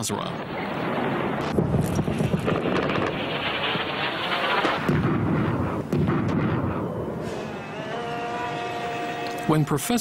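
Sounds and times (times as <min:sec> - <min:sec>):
steady low rumble: 0:00.3 - 0:07.2.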